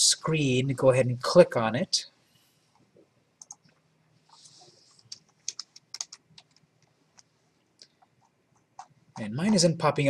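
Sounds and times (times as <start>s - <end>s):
computer mouse clicks: 2.8s - 9.3s
soft hiss: 3.6s - 8.3s.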